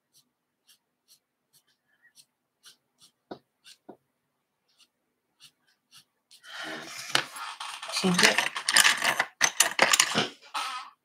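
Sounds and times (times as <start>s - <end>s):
wooden pencils clattering together: 6.9s - 10.8s.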